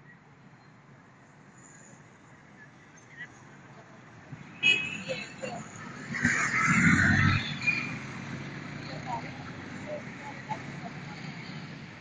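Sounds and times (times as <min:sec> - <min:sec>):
low hum of street traffic: 0:00.0 - 0:12.0.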